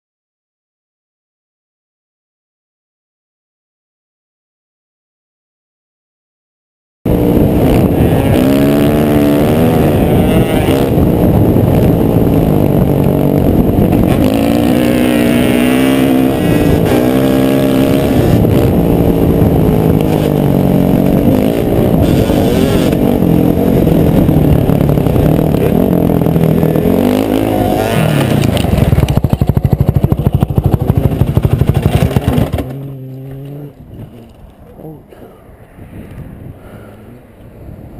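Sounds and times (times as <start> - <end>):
dirt bike engine revving: 7.1 - 33.8
wind on microphone: 7.1 - 37.9.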